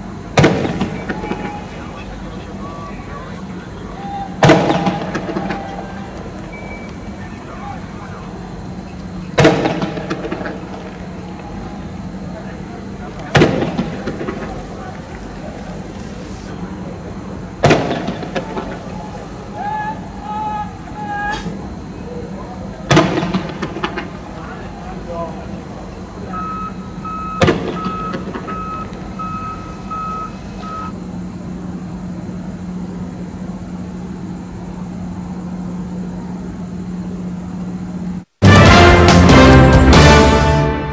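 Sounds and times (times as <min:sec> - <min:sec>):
loud bang with echo: 0:04.4 - 0:05.6
reversing alarm beeping: 0:06.4 - 0:07.2, 0:26.1 - 0:31.0
music: 0:38.4 - 0:40.9.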